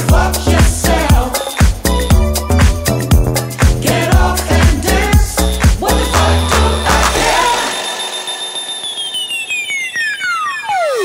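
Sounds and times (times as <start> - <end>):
electro dance track: 0.0 - 11.0
high synth tone gliding downward: 6.0 - 11.0.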